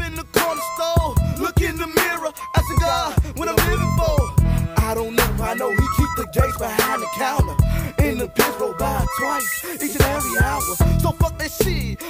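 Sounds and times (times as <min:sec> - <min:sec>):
rapping over a drum beat: 0:00.0 - 0:12.0.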